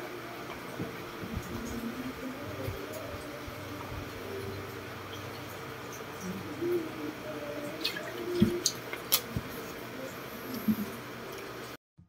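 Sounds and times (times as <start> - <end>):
wet mouth clicks: 7.8 - 9.4.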